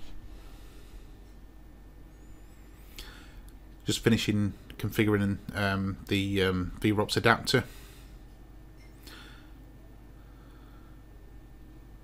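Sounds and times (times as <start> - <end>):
faint high whine: 0.0 - 12.0.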